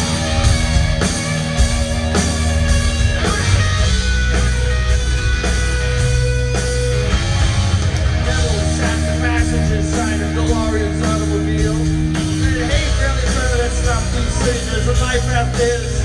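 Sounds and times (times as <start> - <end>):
bass guitar: 0.0 - 16.0
distorted electric guitars: 0.0 - 16.0
drum beat: 0.0 - 16.0.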